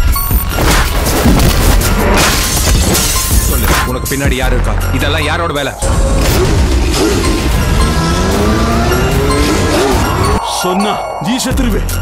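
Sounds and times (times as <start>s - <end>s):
action trailer music: 0.0s - 12.0s.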